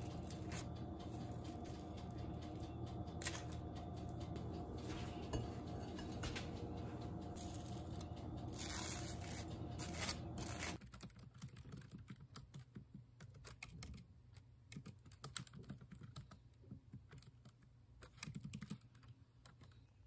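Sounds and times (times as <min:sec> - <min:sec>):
computer keyboard typing: 0:09.4 - 0:14.1, 0:14.7 - 0:19.8.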